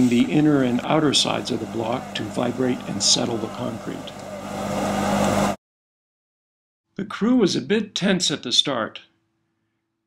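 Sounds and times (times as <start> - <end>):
machinery humming and rumbling: 0.0 - 5.6.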